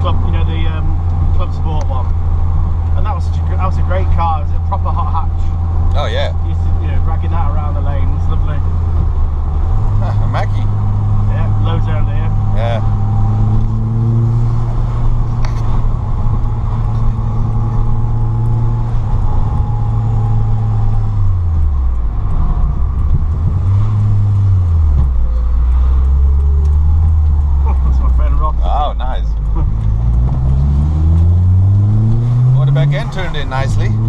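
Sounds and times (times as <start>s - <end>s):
car engine from inside cabin: 0.0s - 34.0s.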